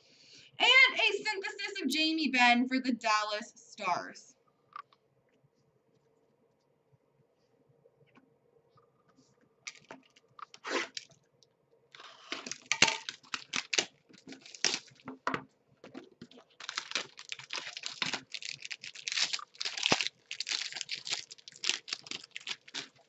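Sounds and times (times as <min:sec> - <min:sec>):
wrapping and cardboard tearing: 0:10.5 - 0:11.1, 0:12.0 - 0:15.1, 0:16.0 - 0:23.0.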